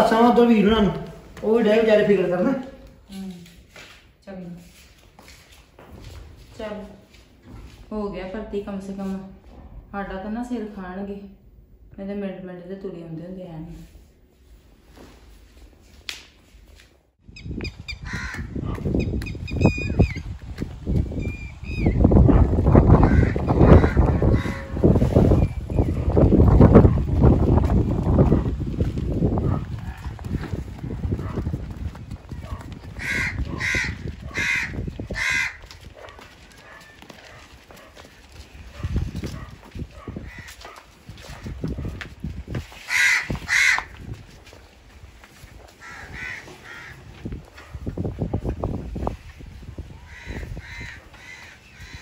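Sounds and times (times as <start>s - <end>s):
birds calling: 17.3s - 20.3s, 20.9s - 26.6s, 32.3s - 37.1s, 45.8s - 47.2s, 50.0s - 52.0s.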